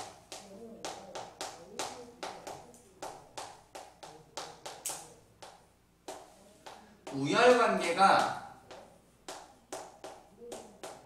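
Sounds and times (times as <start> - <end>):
chalk writing on chalkboard: 0.0 - 7.2, 8.7 - 11.0.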